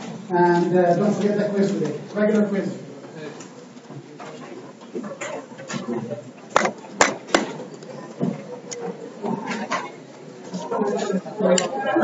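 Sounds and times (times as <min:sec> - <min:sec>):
faint indistinct voices: 0:00.0 - 0:12.0
room noise: 0:00.0 - 0:12.0.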